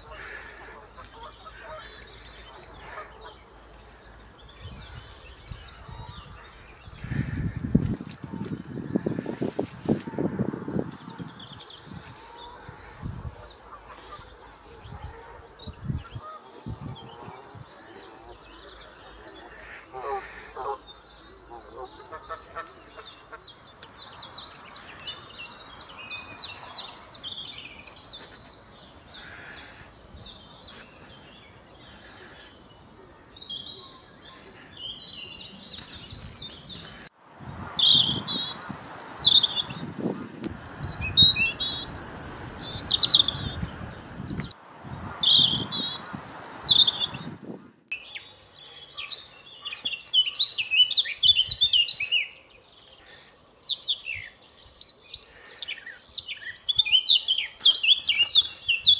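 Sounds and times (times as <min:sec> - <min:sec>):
dense birdsong: 0:00.0 - 0:58.9
robin warbling song: 0:32.7 - 0:52.4.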